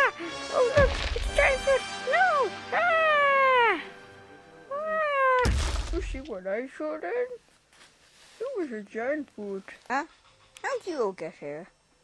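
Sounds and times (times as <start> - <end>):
heavy thump: 0.8 - 1.6, 5.4 - 6.4.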